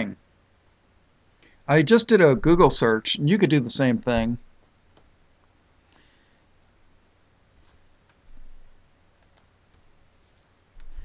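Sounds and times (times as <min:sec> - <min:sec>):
computer mouse clicks: 0:09.2 - 0:09.5.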